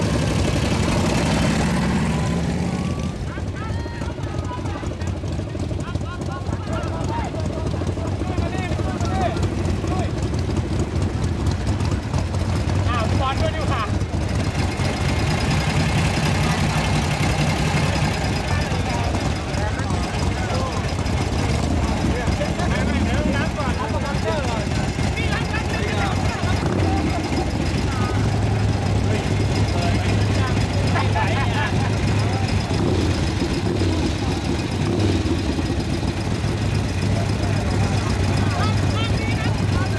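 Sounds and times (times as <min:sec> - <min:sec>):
motorcycle engines idling: 0:00.0 - 0:39.9
people talking: 0:02.3 - 0:10.2, 0:12.8 - 0:14.0, 0:14.6 - 0:39.9.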